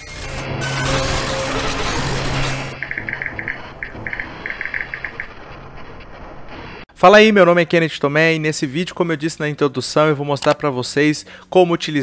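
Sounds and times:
person speaking: 7.0 - 12.0.

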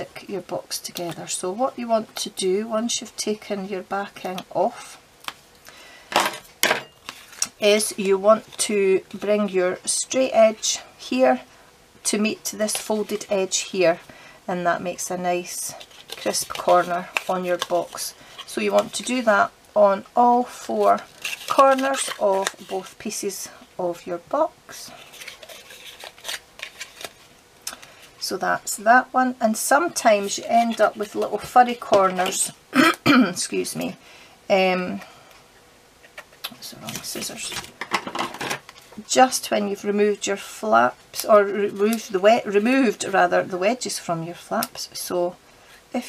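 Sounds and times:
cardstock rubbing and crinkling: 12.6 - 13.5, 15.5 - 19.3, 20.4 - 23.2, 24.7 - 28.0, 29.8 - 32.5, 36.0 - 37.8
cardboard rustling: 25.0 - 27.3.

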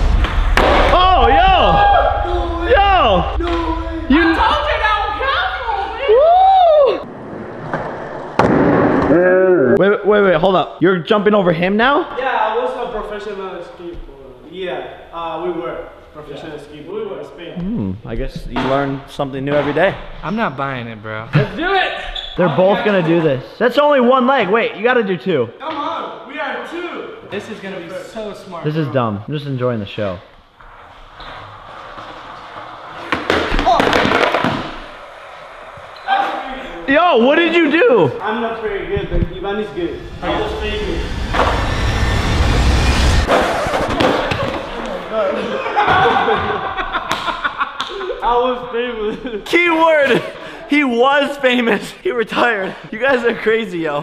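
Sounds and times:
skateboard hitting hard floor: 0.2 - 1.1, 7.0 - 9.2, 30.7 - 36.7, 43.3 - 45.0
excited shouting: 0.9 - 7.0
person yelling: 0.9 - 7.0
skateboard wheels rolling: 4.4 - 9.1, 30.6 - 39.6.

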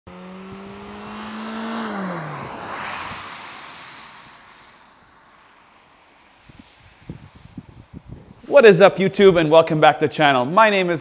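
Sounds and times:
car passing by at speed: 0.1 - 8.8
tyre and road noise: 0.1 - 11.0.

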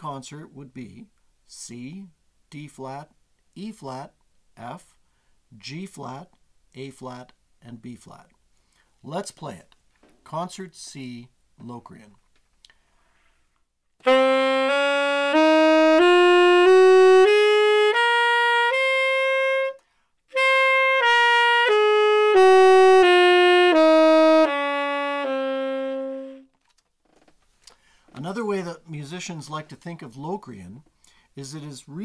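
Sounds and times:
short breath: 5.0 - 5.5, 8.5 - 9.0, 12.6 - 13.7, 19.8 - 20.2, 27.6 - 28.2, 30.9 - 31.4
tenor saxophone playing scale: 14.0 - 26.6.

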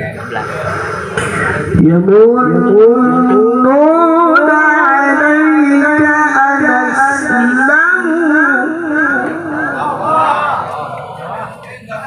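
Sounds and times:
man reciting melodically into microphone: 1.2 - 10.7.

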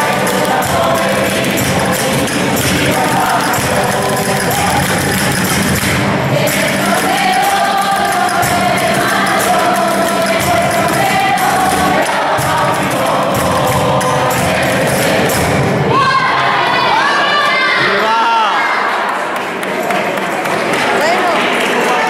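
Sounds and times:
strummed guitars: 0.0 - 16.0
group singing a hymn: 0.0 - 17.4.

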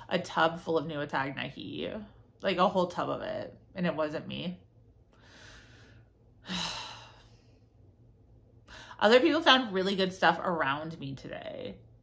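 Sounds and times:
woman sighing: 6.4 - 7.3.

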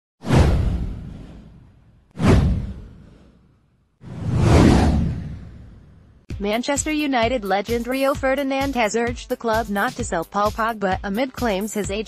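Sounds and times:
deep low boom: 0.3 - 3.3, 4.1 - 6.2
swoosh sweeping down: 4.0 - 6.2.

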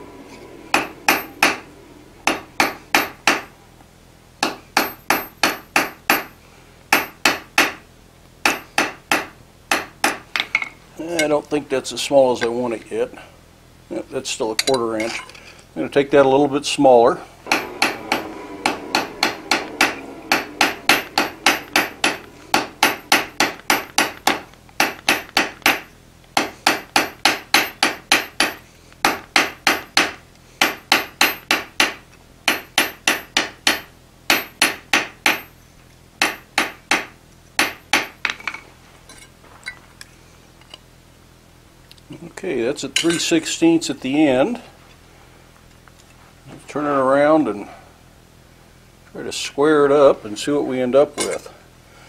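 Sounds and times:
hammer striking hot iron on anvil: 0.7 - 3.5, 4.4 - 7.8, 8.4 - 11.3, 17.5 - 35.5, 36.2 - 38.6.

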